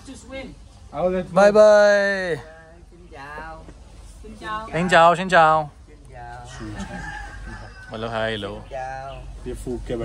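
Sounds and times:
rooster crowing: 4.7s - 5.4s, 6.4s - 8.4s.

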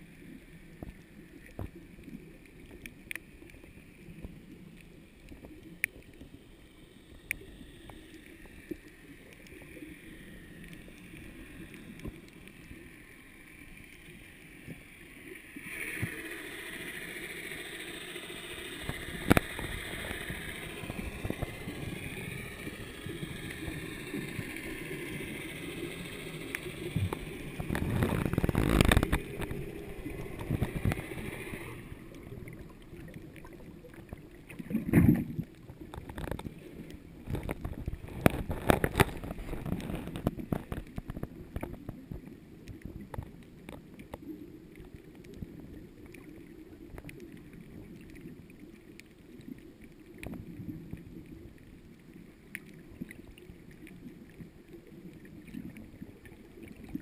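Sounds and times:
underwater rush of water: 0.0s - 57.0s
sharp underwater clicks: 0.7s - 3.6s, 4.2s - 6.4s, 15.7s - 51.6s
wavering high whine: 6.8s - 33.1s.

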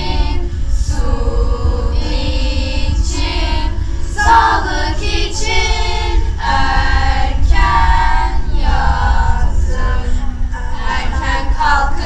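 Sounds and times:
children's choir singing: 0.0s - 12.0s
steady low rumble: 0.0s - 12.0s.

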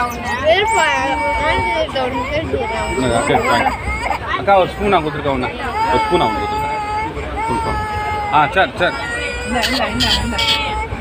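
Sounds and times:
newborn baby crying: 0.0s - 4.4s, 5.5s - 11.0s.

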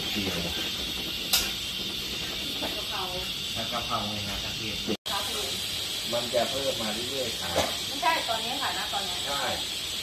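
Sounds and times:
oil sizzling in a wok: 0.0s - 10.0s.

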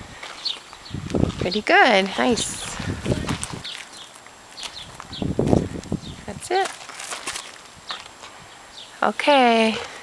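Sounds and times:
footsteps on dirt: 0.0s - 8.5s.

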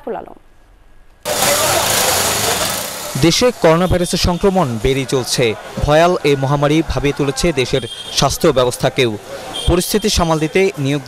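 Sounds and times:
vehicle engine running: 1.2s - 5.8s.

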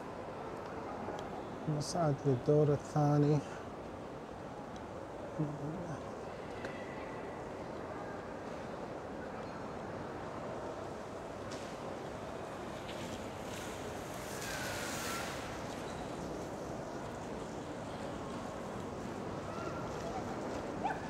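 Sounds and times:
hiss: 13.5s - 15.6s.

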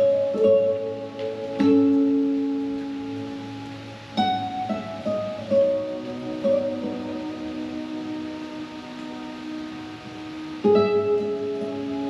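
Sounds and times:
acoustic guitar notes ringing: 0.0s - 12.0s.

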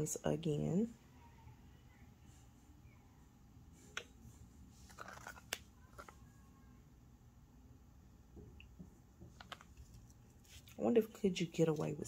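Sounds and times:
faint low hum: 0.0s - 12.0s
small clicks and taps: 8.5s - 10.2s.

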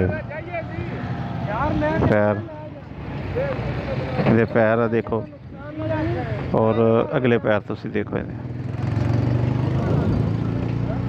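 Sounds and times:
people talking: 0.0s - 8.4s.

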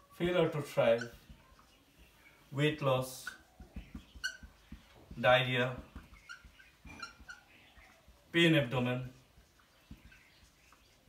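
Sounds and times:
marker squeaking on whiteboard: 0.0s - 11.0s.

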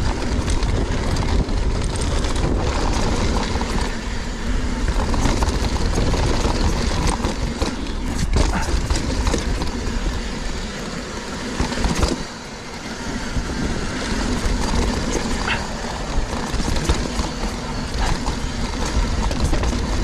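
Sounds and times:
wind rumble on microphone: 0.0s - 10.2s, 13.2s - 20.0s
bike rattling over bumps: 0.0s - 20.0s
bike tyres on dirt: 0.0s - 20.0s.

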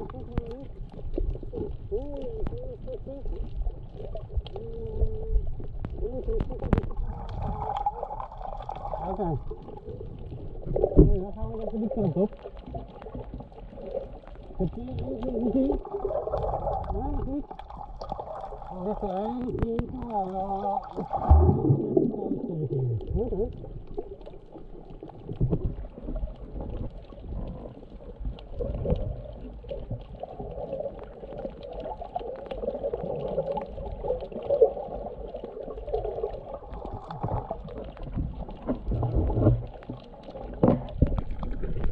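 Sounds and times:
muffled voice: 0.0s - 0.8s, 1.9s - 3.5s, 22.3s - 23.6s
underwater water rush: 0.0s - 41.9s.

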